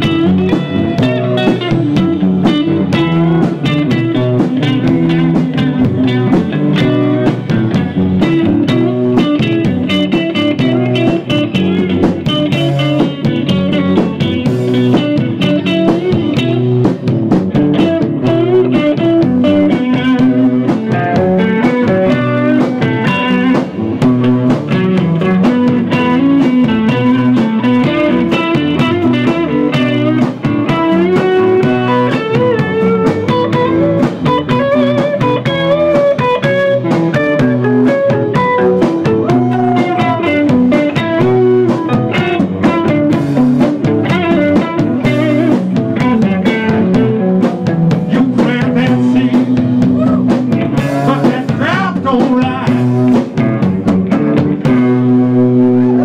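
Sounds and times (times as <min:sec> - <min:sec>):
live band with electric guitars: 0:00.0 - 0:56.0.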